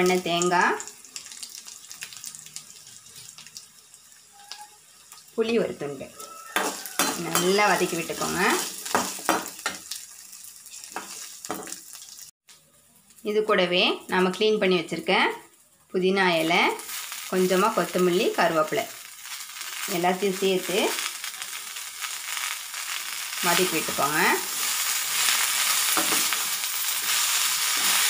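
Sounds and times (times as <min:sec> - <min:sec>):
faint sizzle: 0:00.0 - 0:28.0
woman speaking: 0:05.4 - 0:06.2, 0:07.2 - 0:08.7, 0:13.3 - 0:15.4, 0:16.0 - 0:18.9, 0:19.9 - 0:21.0, 0:23.4 - 0:24.5
metal spatula scraping a pan: 0:06.2 - 0:10.0, 0:23.7 - 0:28.0.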